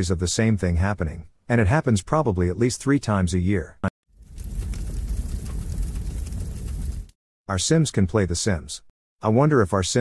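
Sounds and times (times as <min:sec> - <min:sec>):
steady low rumble: 0:04.2 - 0:07.1.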